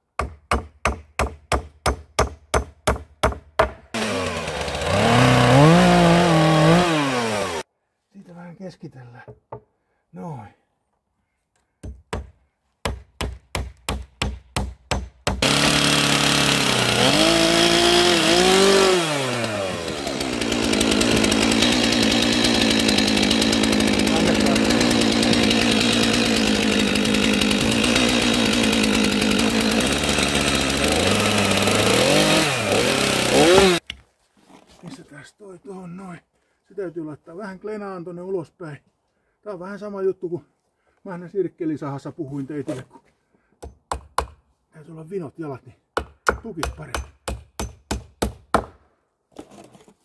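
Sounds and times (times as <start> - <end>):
chainsaw revving: 3.9 - 7.7, 15.4 - 33.8.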